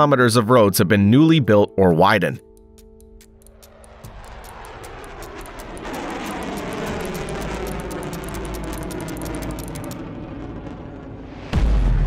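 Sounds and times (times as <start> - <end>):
fast even ticking: 2.4 - 10.0
piston engines droning: 2.4 - 10.1.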